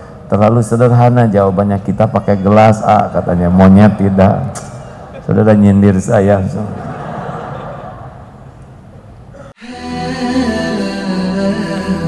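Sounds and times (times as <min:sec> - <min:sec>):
lecture hall murmur: 0:00.0 - 0:12.0.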